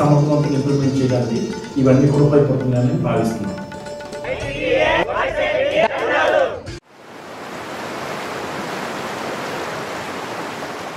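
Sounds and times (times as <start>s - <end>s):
voice with music: 0.0s - 6.8s
splashing water rushing: 6.9s - 10.9s.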